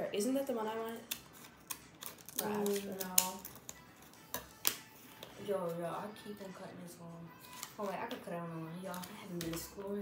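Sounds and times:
scissors snipping plastic: 1.0 - 4.9.

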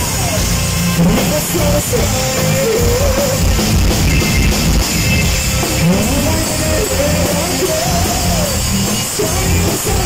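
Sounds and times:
bass: 0.0 - 10.0
distorted electric guitar: 0.0 - 10.0
drums: 0.0 - 10.0.

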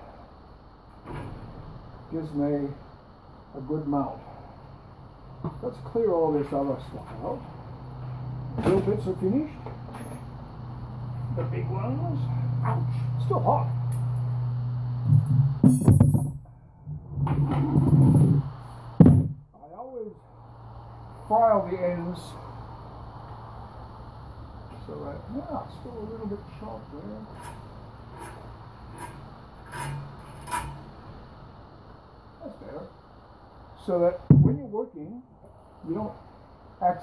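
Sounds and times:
low electric hum: 0.0 - 37.0
wood scraping: 16.8 - 18.6, 27.2 - 31.1.

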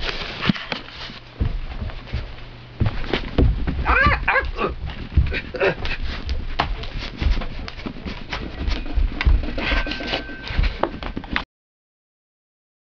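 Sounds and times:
rope clicking on floor: 0.0 - 9.5
feet landing thumps: 1.0 - 9.9.

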